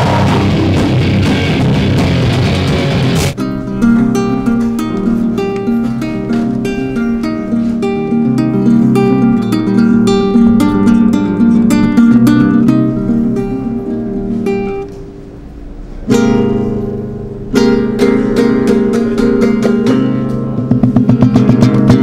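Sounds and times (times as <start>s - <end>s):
acoustic guitar plucked notes: 0.0s - 22.0s.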